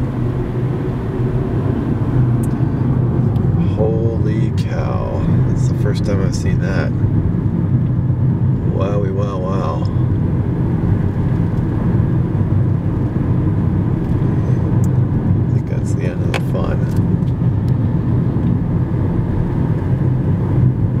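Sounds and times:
car road and engine rumble: 0:00.0 - 0:21.0.

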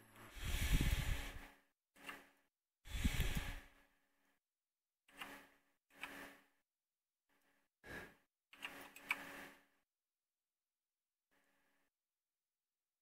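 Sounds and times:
man breathing close to microphone: 0:00.2 - 0:01.6, 0:02.9 - 0:04.0, 0:07.8 - 0:08.3.

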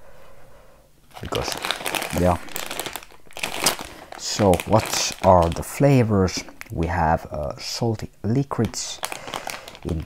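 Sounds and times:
plastic bag crinkling: 0:01.1 - 0:06.8, 0:07.6 - 0:10.0.

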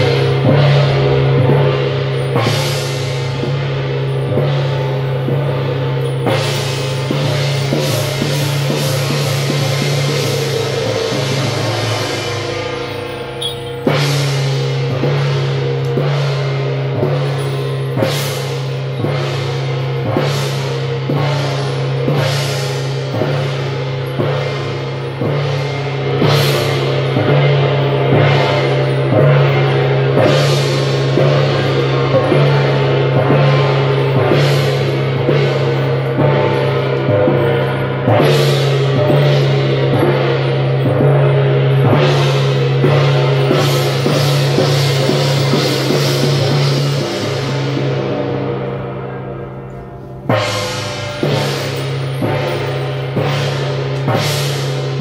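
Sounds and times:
drums beating: 0:00.0 - 0:55.0
hand gong struck: 0:00.0 - 0:55.0
low drone: 0:00.0 - 0:55.0.

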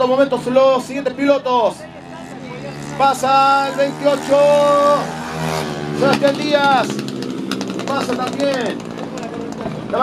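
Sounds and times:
motorcycle engine droning: 0:00.0 - 0:10.0.

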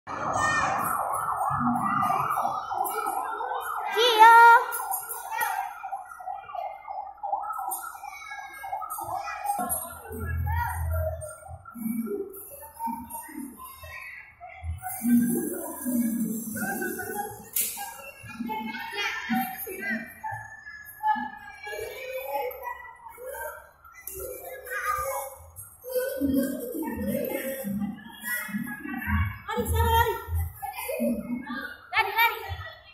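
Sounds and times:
children calling and chattering: 0:00.1 - 0:32.9
toy fire truck siren warbling: 0:00.2 - 0:12.4.

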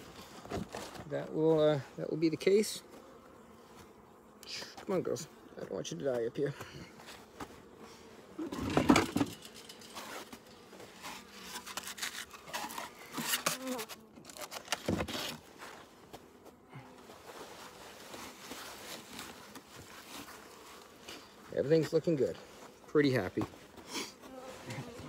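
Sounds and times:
hive parts bumping and rustling: 0:00.0 - 0:01.4, 0:05.6 - 0:25.0
bees buzzing: 0:01.4 - 0:25.0.

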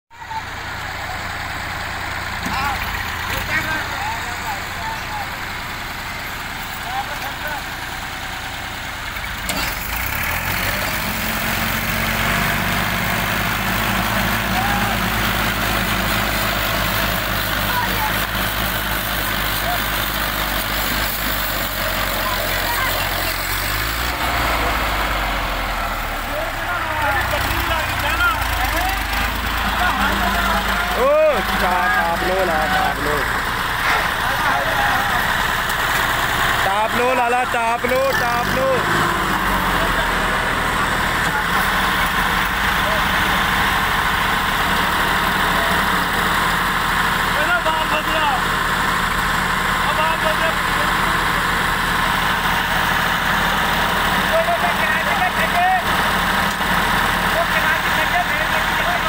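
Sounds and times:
tractor engines under load: 0:00.2 - 0:59.0
men calling out: 0:13.8 - 0:20.1, 0:26.2 - 0:35.7.

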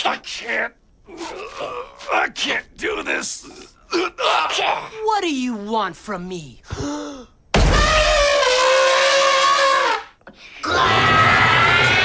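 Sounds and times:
elephant trumpeting: 0:07.8 - 0:10.1.

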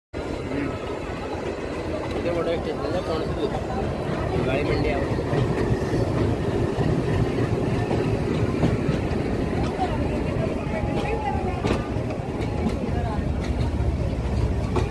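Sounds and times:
freight train wheels rumbling on rails: 0:00.2 - 0:14.9
wheels clicking over rail joints: 0:01.4 - 0:14.9.

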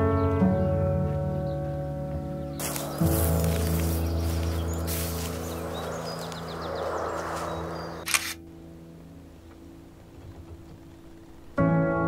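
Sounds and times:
high chirps: 0:02.6 - 0:08.4
outdoor hiss: 0:02.6 - 0:08.4
camera shutter click: 0:08.0 - 0:08.4.

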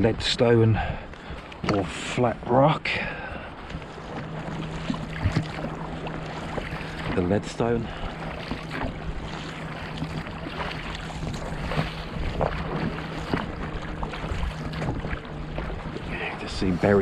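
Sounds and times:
steady low hum: 0:00.0 - 0:17.0
water splashing against dinghy: 0:00.0 - 0:17.0.

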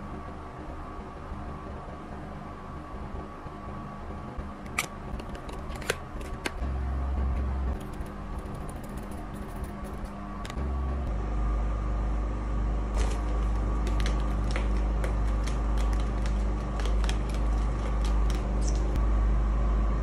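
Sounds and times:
fan air buffeting microphone: 0:00.0 - 0:20.0
paper fan pleats flapping: 0:13.0 - 0:19.0.

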